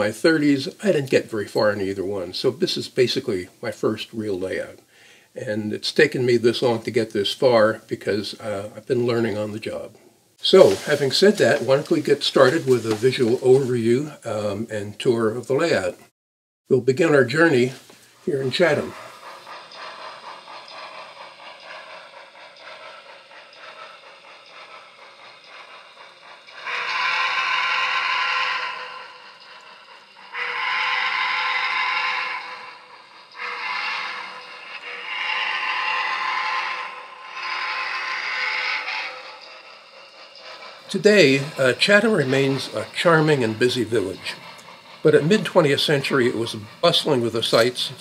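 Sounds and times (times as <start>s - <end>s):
model train running: 0.0s - 15.9s, 16.7s - 48.0s
model steam locomotive whistle: 10.4s - 15.8s, 17.1s - 21.2s, 24.5s - 48.0s.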